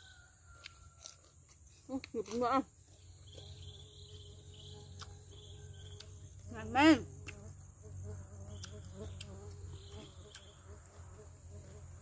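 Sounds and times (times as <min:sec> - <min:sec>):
insects trilling: 0:00.0 - 0:12.0
pulsing insect chirp: 0:02.5 - 0:12.0.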